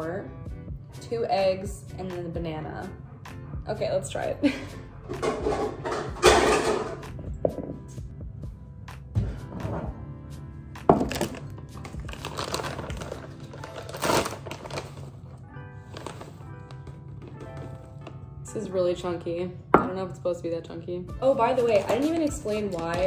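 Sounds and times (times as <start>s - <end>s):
background music: 0.0s - 23.0s
bowl thunking on wooden board: 7.4s - 7.8s
bag rustling: 11.1s - 18.1s.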